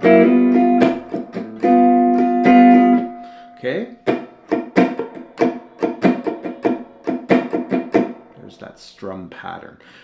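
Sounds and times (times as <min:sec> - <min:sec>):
electric guitar funk strumming: 0:00.0 - 0:08.6.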